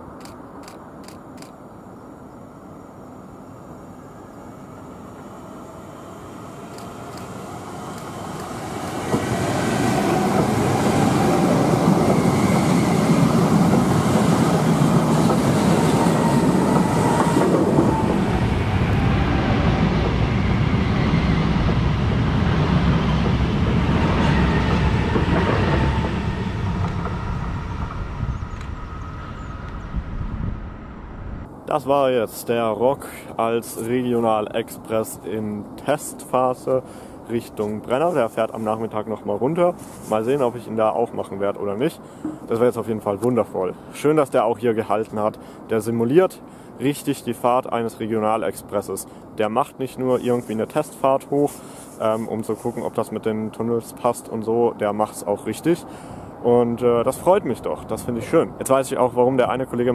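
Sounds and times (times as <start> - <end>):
electric train passing: 0.0 - 31.7.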